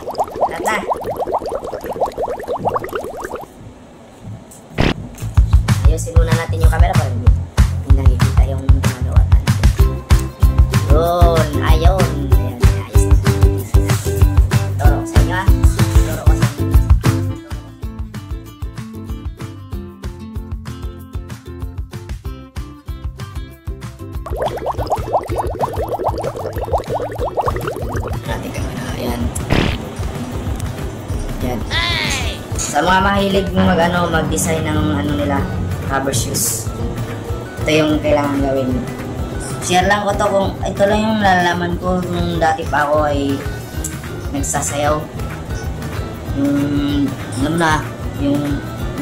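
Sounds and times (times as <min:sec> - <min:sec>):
rising bubbly blips: 0:00.0 - 0:03.6, 0:24.2 - 0:28.7, 0:29.4 - 0:29.9
background music with low beat: 0:04.8 - 0:31.8.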